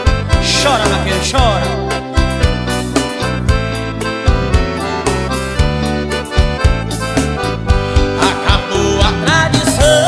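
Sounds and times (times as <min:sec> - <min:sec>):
accordion playing: 0:00.0 - 0:10.0
bass line: 0:00.0 - 0:10.0.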